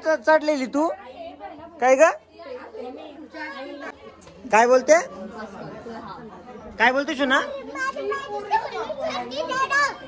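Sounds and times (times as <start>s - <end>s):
people chattering: 0.0s - 10.0s
child's high-pitched voice: 7.4s - 10.0s.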